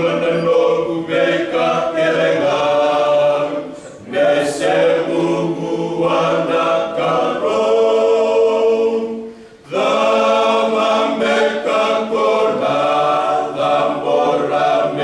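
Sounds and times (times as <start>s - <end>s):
men's choir singing in harmony: 0.0s - 15.0s.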